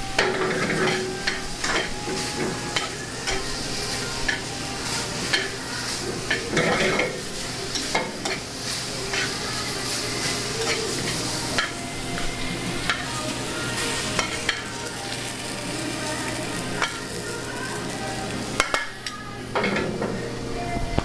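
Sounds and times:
food sizzling in pans: 0.0s - 21.0s
metal tongs clicking on pan: 4.2s - 4.5s, 5.2s - 5.6s.

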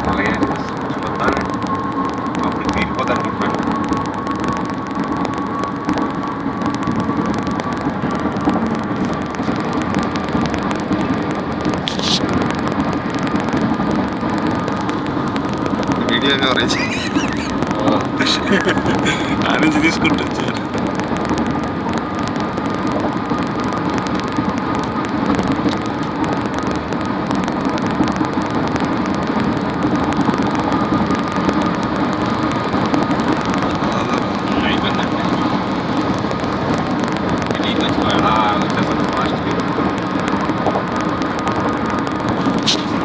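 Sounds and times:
car road and engine noise: 0.0s - 43.0s
faint steady whine: 0.0s - 43.0s.

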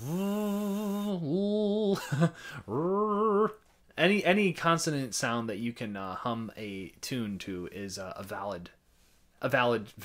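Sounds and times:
man humming held notes: 0.0s - 1.9s.

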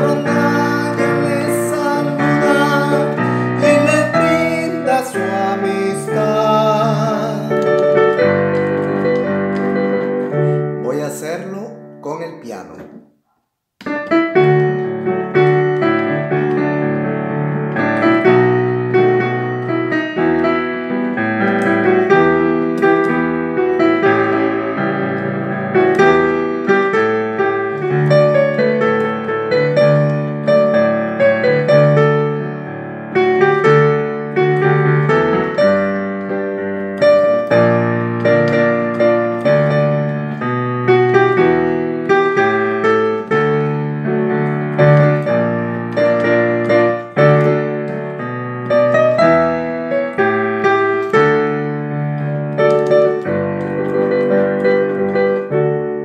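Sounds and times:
piano playing hymn chords: 0.0s - 13.0s, 13.8s - 56.0s.

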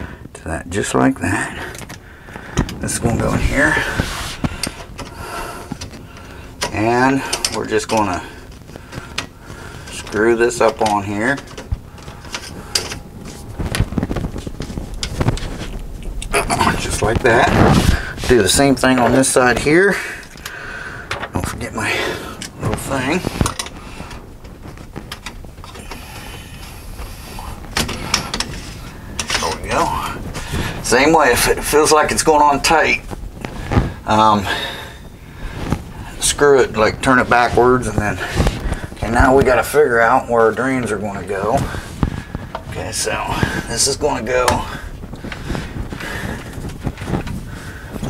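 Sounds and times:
person muttering: 16.2s - 16.9s.

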